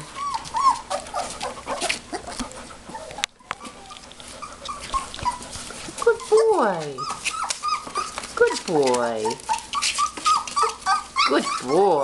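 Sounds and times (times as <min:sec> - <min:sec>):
puppies whimpering: 0:00.0 - 0:12.0.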